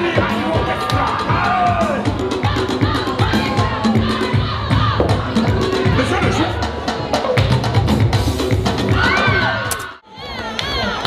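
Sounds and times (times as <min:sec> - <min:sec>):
audience cheering and shouting: 0:00.0 - 0:06.7, 0:08.8 - 0:11.0
loud dance music: 0:00.0 - 0:10.9.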